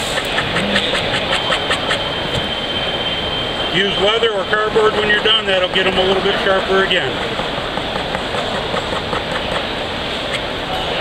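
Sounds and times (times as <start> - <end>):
distant voices in busy hall: 0.0 - 11.0.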